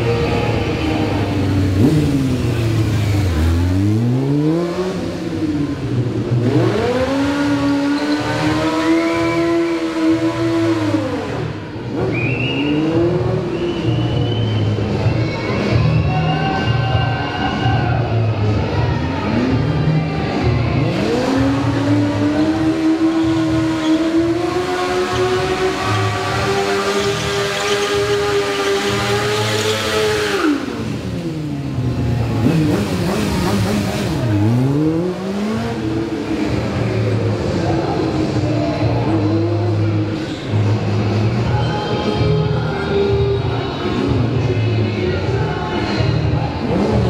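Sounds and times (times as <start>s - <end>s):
motorcycle engine revving: 0.0s - 15.2s, 19.2s - 41.6s, 42.2s - 47.0s.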